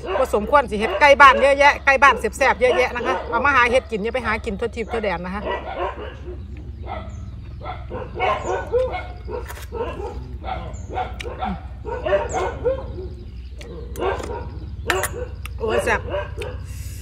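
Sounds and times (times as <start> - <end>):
steady low hum: 0.0 - 17.0
dog yipping and whining: 5.5 - 16.6.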